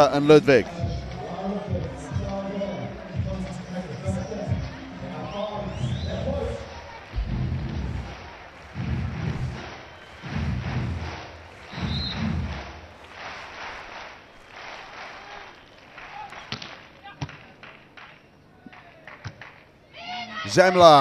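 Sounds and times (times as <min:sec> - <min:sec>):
stadium crowd: 0:00.0 - 0:21.0
referee's whistle: 0:05.2 - 0:06.6, 0:11.7 - 0:12.5
loud low thumps: 0:07.1 - 0:13.0.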